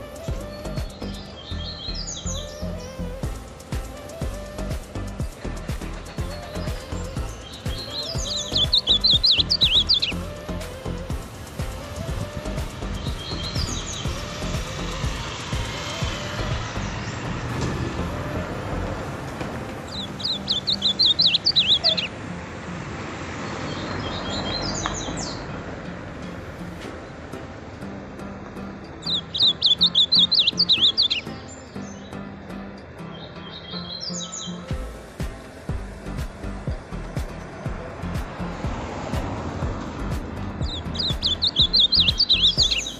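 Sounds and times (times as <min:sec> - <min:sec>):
bird warbling song: 0:00.0 - 0:19.0, 0:19.8 - 0:22.2, 0:23.4 - 0:25.5, 0:29.0 - 0:38.6, 0:40.0 - 0:42.9.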